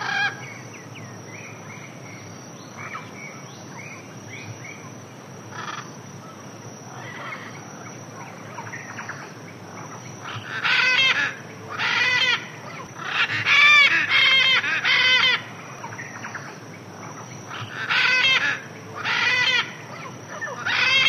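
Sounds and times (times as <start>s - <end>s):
large birds squawking: 0.0s - 0.6s, 5.5s - 5.9s, 6.9s - 7.6s, 9.8s - 21.0s
faint background hiss: 0.0s - 21.0s.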